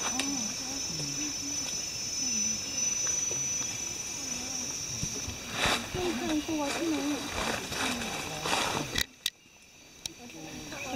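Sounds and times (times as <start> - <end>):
crickets trilling: 0.0 - 10.9
people talking quietly: 0.0 - 10.9.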